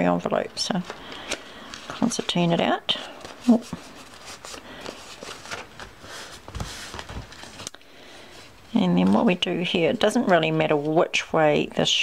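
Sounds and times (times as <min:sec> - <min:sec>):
paper envelopes rustling: 0:00.5 - 0:11.0.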